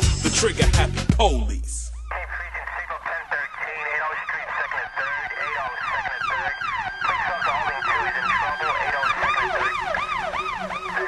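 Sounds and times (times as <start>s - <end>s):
steady high tone: 1.2s - 3.6s
police sirens sweeping: 1.2s - 11.0s.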